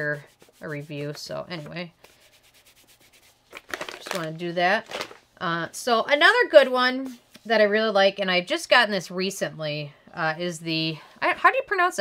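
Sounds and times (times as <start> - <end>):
wipe rubbing on skin: 0.0 - 3.5.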